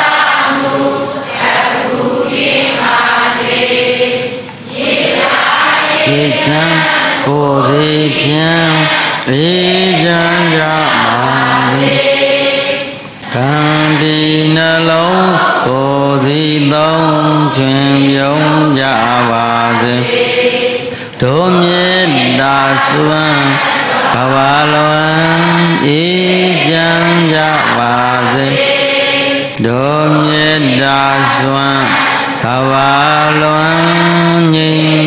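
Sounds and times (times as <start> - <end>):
devotional chanting: 0.0 - 35.0.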